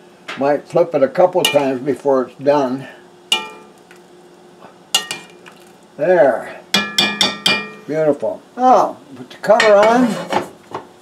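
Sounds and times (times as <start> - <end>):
faint steady hum: 0.0 - 11.0
metal spoon clinking on pot: 1.5 - 1.8, 3.3 - 3.8, 5.0 - 5.4, 6.8 - 7.8.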